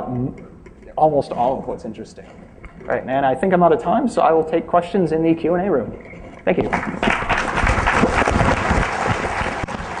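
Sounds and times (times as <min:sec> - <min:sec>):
audience applauding: 0:06.7 - 0:10.0.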